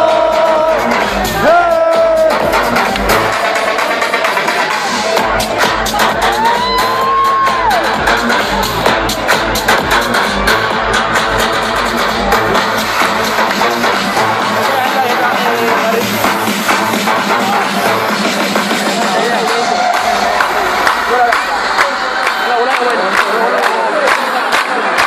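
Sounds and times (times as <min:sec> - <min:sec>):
electronic dance music: 0:00.0 - 0:25.0.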